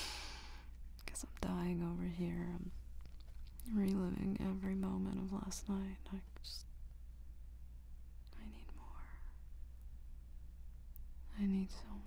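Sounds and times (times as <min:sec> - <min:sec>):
steady low hum: 0:00.0 - 0:12.0
woman whispering: 0:01.0 - 0:02.8, 0:03.6 - 0:06.7, 0:08.2 - 0:09.4, 0:11.2 - 0:12.0.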